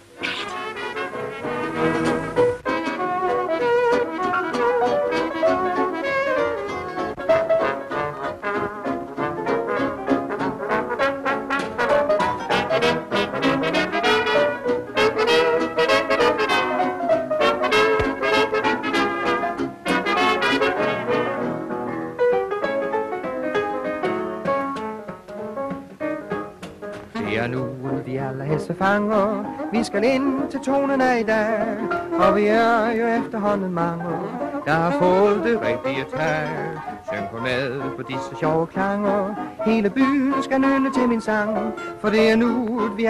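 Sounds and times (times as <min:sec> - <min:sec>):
trumpets and trombone: 0:00.0 - 0:22.0, 0:27.1 - 0:28.0, 0:31.3 - 0:43.0
swing dance band playing: 0:00.0 - 0:43.0.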